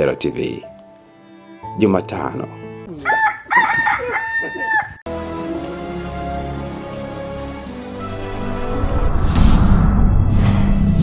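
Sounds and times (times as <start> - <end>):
rooster crowing: 3.0 - 5.0.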